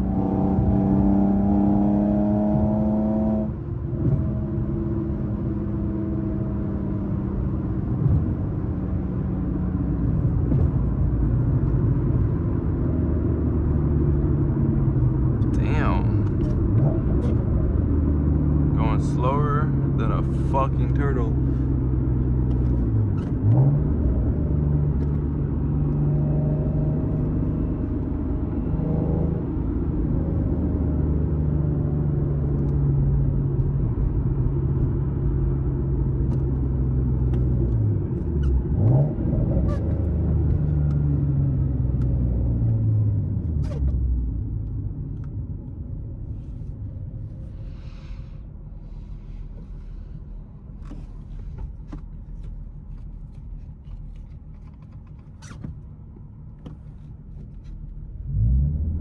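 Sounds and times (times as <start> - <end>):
car engine droning from inside: 0.0 - 59.0.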